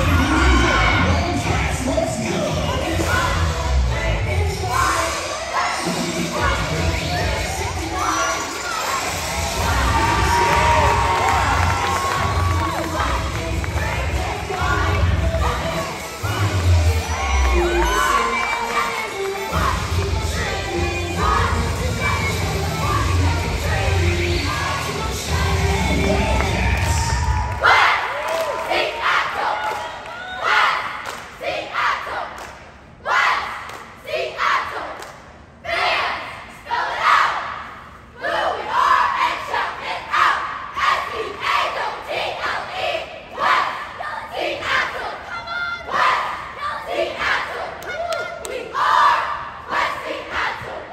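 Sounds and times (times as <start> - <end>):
cheerleaders shouting a chant: 0.0 - 50.9
crowd cheering and screaming: 9.3 - 13.0, 16.7 - 19.0.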